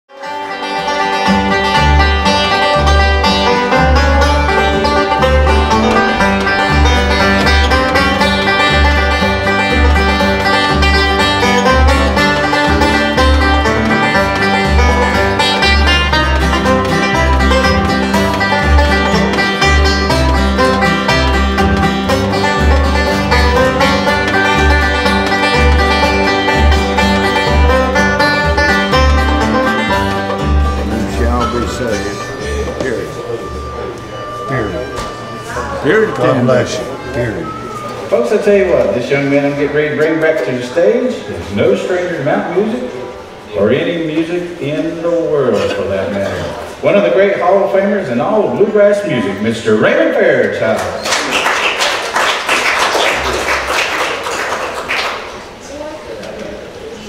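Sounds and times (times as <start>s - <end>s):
fast banjo picking: 0.1s - 34.4s
guitar: 0.1s - 57.0s
bass line: 0.9s - 37.4s.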